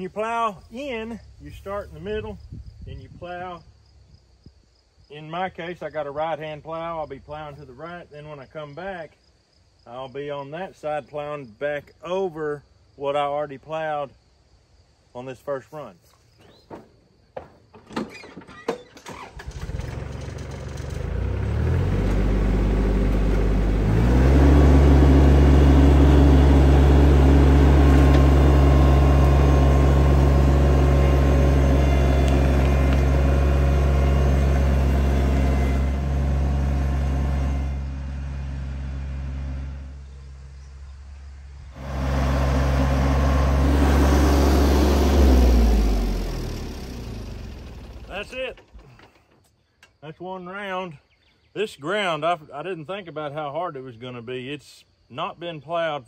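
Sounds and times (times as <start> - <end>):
tractor diesel engine under load: 17.9 - 40.6, 41.6 - 49.4.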